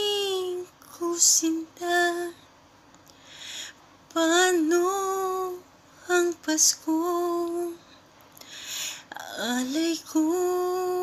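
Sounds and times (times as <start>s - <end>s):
woman singing unaccompanied: 0.0s - 2.5s, 4.1s - 8.0s, 9.0s - 11.0s
audible breath: 3.1s - 3.8s, 8.4s - 9.1s.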